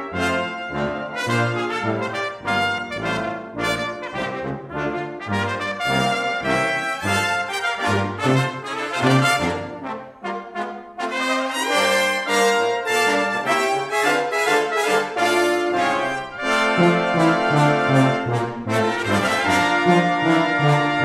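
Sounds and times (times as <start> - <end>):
brass ensemble playing: 0.0 - 21.0
low brass bass notes: 0.0 - 21.0.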